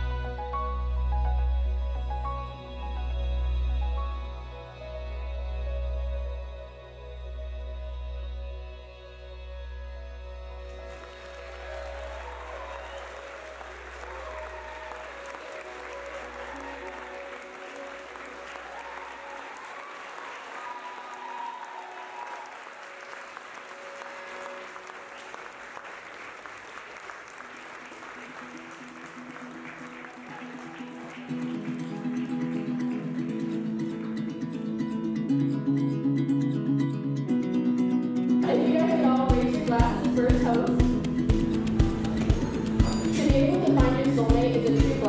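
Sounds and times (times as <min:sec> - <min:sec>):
guests applauding: 0:10.6 - 0:34.6, 0:39.3 - 0:45.0
acoustic guitar strumming: 0:30.2 - 0:45.0.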